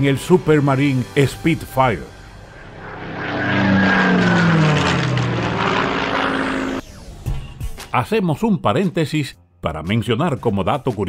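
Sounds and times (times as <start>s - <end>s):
propeller plane engine drone: 0.0s - 7.6s.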